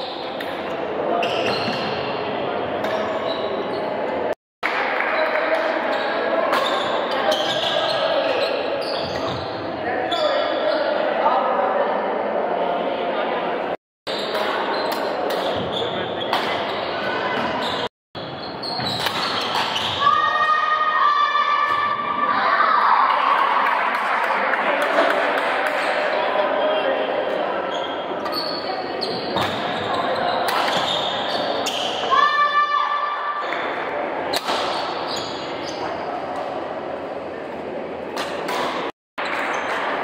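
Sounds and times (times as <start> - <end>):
murmur of indistinct voices: 0.0 - 13.8.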